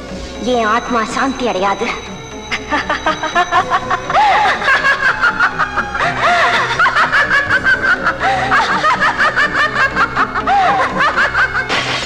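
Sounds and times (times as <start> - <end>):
film music: 0.0 - 12.0
woman laughing loudly: 2.6 - 11.7.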